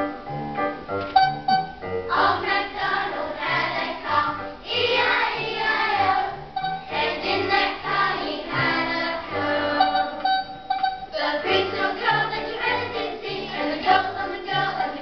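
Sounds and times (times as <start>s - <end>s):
instrumental backing: 0.0s - 14.4s
children singing: 2.1s - 10.3s, 11.1s - 15.0s.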